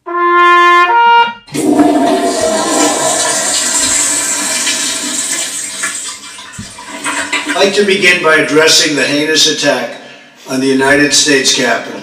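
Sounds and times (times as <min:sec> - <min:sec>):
trumpet note: 0:00.0 - 0:02.6
toilet flushing: 0:01.4 - 0:08.8.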